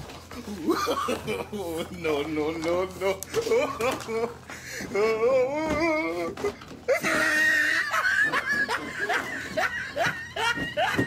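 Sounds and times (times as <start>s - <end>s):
person snickering: 0.4s - 2.1s, 3.0s - 11.0s.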